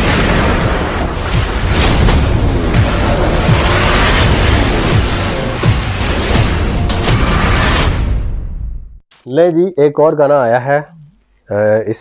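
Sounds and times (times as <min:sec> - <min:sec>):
booming impact sound effects: 0:00.0 - 0:09.0
bass-heavy intro music: 0:02.3 - 0:09.0.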